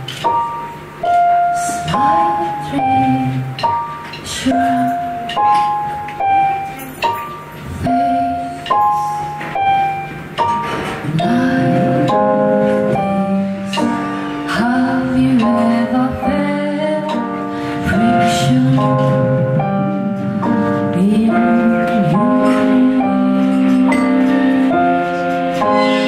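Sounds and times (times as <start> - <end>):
digital piano playing: 0.0 - 26.0
woman singing: 1.4 - 5.7, 7.8 - 8.7, 11.0 - 25.6.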